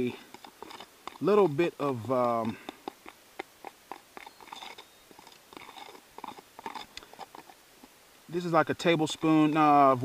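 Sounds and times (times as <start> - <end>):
spoon scraping plastic container: 2.2 - 7.6.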